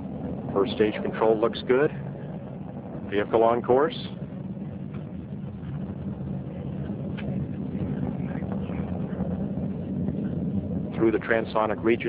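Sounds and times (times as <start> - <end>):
rocket engine roar: 0.0 - 12.0.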